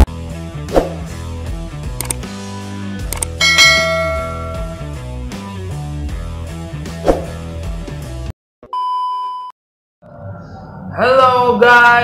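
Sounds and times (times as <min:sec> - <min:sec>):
intro music with bass line: 0:00.1 - 0:08.3
click: 0:02.0 - 0:02.2
bell-like ding: 0:03.4 - 0:05.0.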